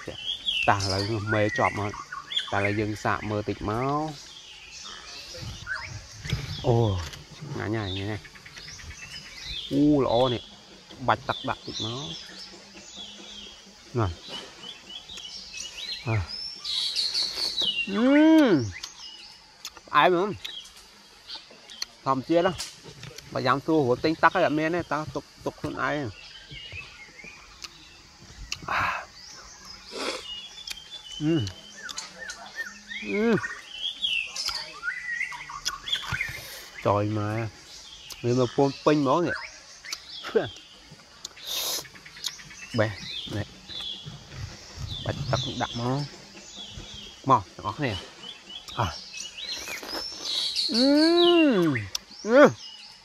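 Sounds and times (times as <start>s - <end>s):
man speaking: 0.0s - 1.9s, 31.2s - 31.6s
small birds chirping: 0.0s - 53.0s
man chewing wetly: 19.6s - 20.6s, 28.4s - 28.8s, 41.2s - 42.4s
man humming mmm: 50.7s - 52.0s.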